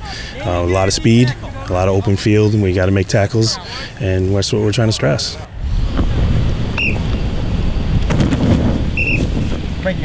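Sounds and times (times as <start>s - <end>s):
wind buffeting microphone: 5.4s - 10.0s.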